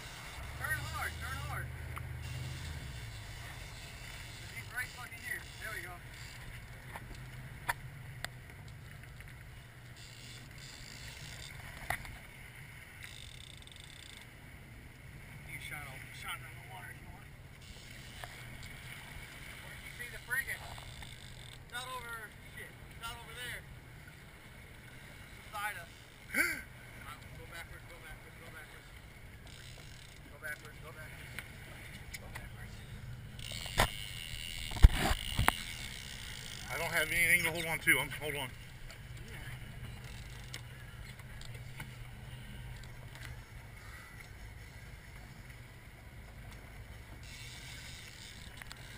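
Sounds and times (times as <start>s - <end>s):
boat engine running: 0.0s - 48.9s
water rushing along hull: 0.0s - 48.9s
knocks and water splashes: 11.3s - 14.2s, 17.6s - 42.0s.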